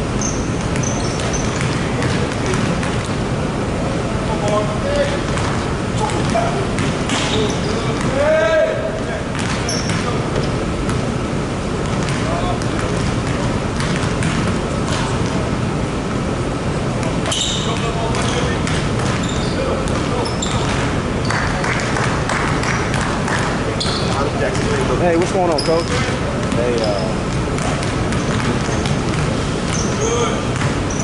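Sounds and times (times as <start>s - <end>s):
voices echoing in a hall: 0.0s - 31.0s
shoe squeaks: 0.2s - 1.8s, 7.1s - 8.1s, 9.6s - 10.6s, 17.2s - 21.4s, 23.8s - 24.3s, 25.4s - 27.3s, 28.1s - 29.0s, 29.7s - 31.0s
basketballs bouncing on hardwood: 0.2s - 3.2s, 5.2s - 8.4s, 9.3s - 11.1s, 11.8s - 15.4s, 17.2s - 31.0s.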